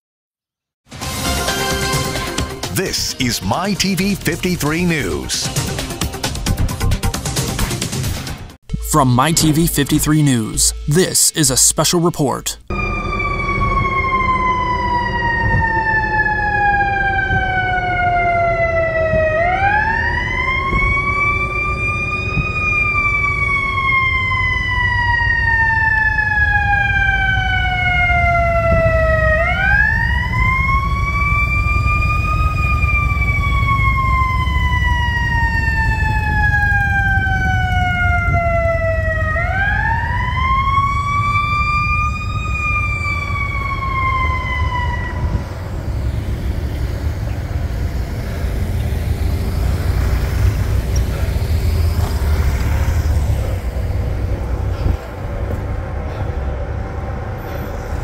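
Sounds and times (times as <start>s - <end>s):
emergency vehicle siren wailing: 12.7s - 58.0s
rumble of passing vehicles: 12.7s - 58.0s.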